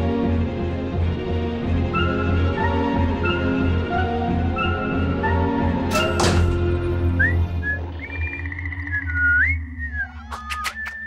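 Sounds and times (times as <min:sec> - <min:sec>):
whistled tune: 0:06.9 - 0:11.0.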